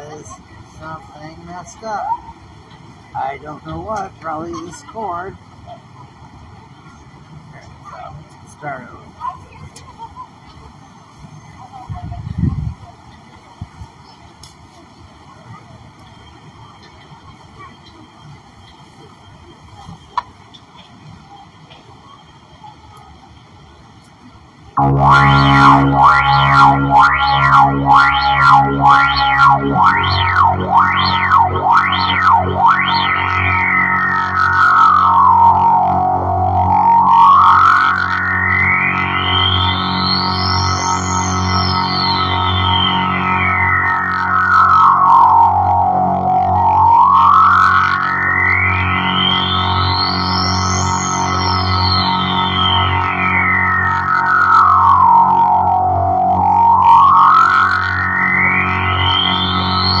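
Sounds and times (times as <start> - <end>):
droning chord with sweeping filter: 24.8 - 60.0.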